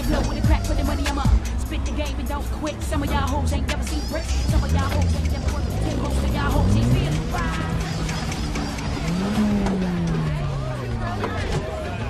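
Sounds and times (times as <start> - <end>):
car engine revving: 0.0 - 12.0
crowd chatter: 0.0 - 12.0.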